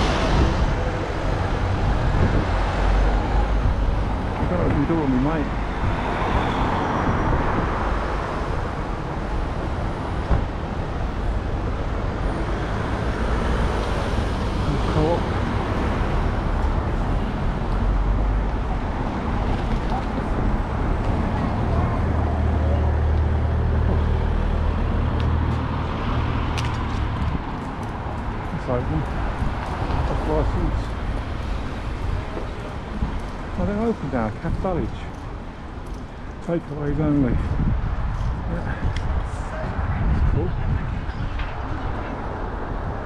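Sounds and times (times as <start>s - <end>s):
street traffic: 0.0s - 43.0s.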